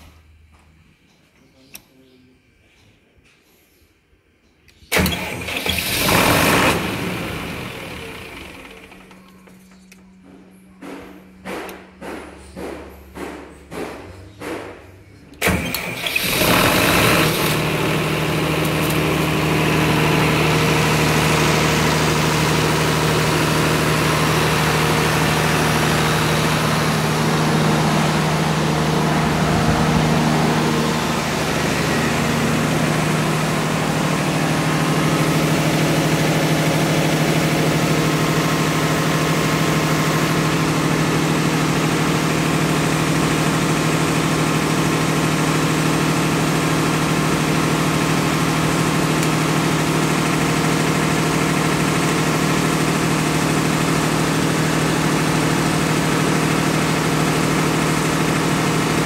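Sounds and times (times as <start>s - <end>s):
diesel engine starter cranking: 4.8s - 10.2s, 15.4s - 59.0s
diesel generator engine running: 4.9s - 14.4s, 15.3s - 59.0s.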